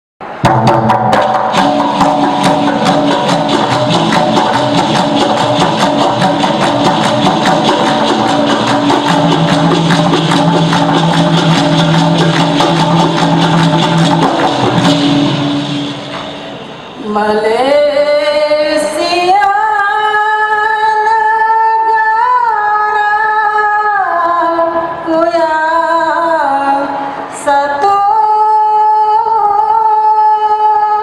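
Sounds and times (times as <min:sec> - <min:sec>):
fast percussion strokes: 0:00.3 - 0:17.0.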